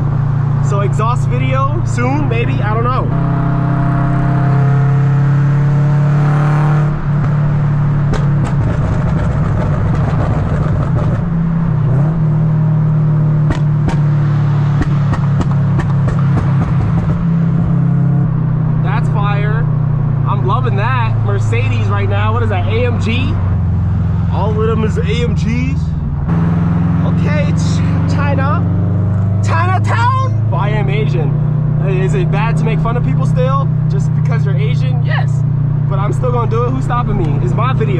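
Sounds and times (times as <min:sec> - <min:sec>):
car exhaust drone: 0:00.0 - 0:37.9.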